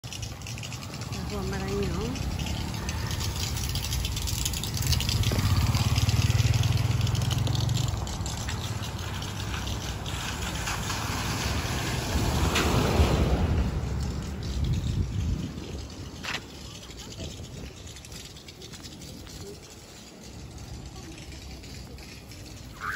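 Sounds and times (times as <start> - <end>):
car driving through water: 0.0 - 22.9
low engine hum: 0.0 - 22.9.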